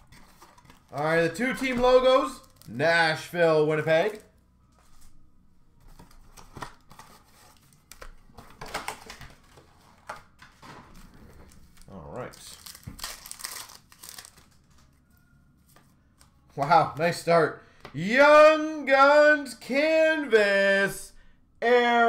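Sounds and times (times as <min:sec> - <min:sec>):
cards rustling in hands: 0:00.0 - 0:02.8, 0:05.8 - 0:17.1
foil wrappers crinkling and ripping: 0:00.0 - 0:02.9, 0:11.5 - 0:14.9.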